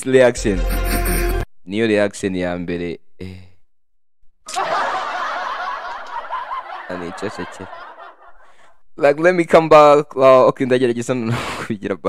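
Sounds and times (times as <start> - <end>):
man speaking: 6.9 - 7.8.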